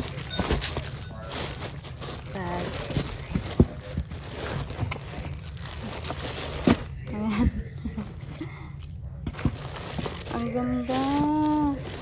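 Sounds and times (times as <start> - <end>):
tissue paper and plastic crinkling: 0.0 - 7.2, 9.3 - 12.0.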